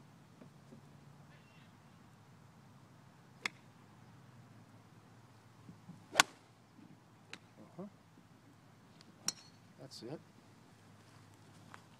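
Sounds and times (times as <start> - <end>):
golf club hitting ball: 6.1 - 6.4.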